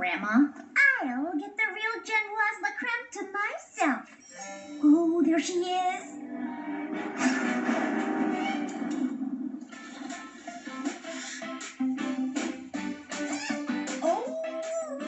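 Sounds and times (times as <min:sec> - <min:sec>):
cartoon music with strummed guitar: 0:04.3 - 0:15.0.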